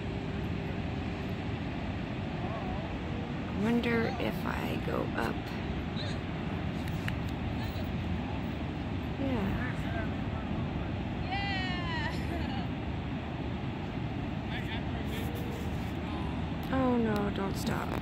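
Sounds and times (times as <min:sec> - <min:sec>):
ocean surf: 0:00.0 - 0:18.0
wind: 0:00.0 - 0:18.0
distant voices calling out: 0:01.7 - 0:18.0.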